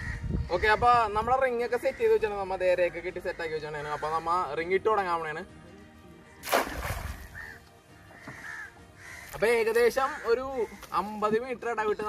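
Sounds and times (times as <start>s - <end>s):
water splashing and settling: 6.4s - 7.6s
faint bird calls: 7.0s - 9.4s.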